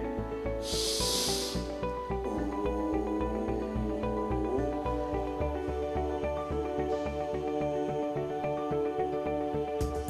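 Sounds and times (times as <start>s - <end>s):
soft background music: 0.0s - 10.0s
breath drawn in through nose: 0.6s - 1.9s.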